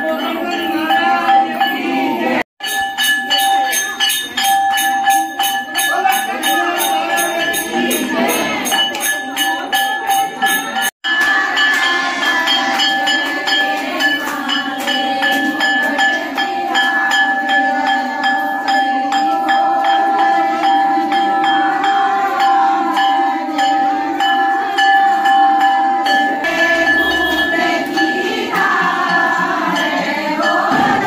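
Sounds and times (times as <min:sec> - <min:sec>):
women singing a hymn: 0:00.0 - 0:02.4, 0:26.4 - 0:31.0
temple bell struck rapidly: 0:00.0 - 0:31.0.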